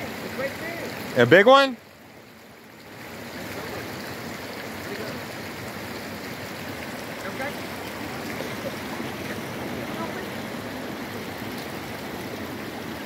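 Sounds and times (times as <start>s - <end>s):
stream water rushing: 0.0s - 13.0s.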